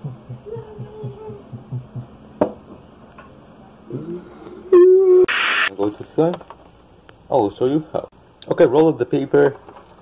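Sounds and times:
loud hiss: 0:05.3 - 0:05.7.

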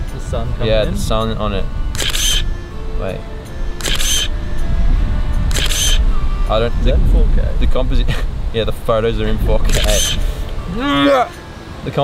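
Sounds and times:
camera shutter clicks: 0:01.9 - 0:02.4, 0:03.8 - 0:04.3, 0:05.5 - 0:06.0, 0:09.7 - 0:10.2.

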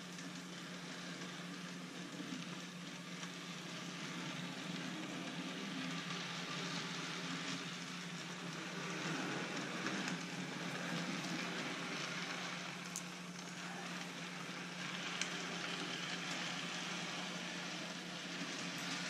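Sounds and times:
model train motor hum: 0:00.0 - 0:19.0
wheels rolling on rails: 0:00.0 - 0:19.0.

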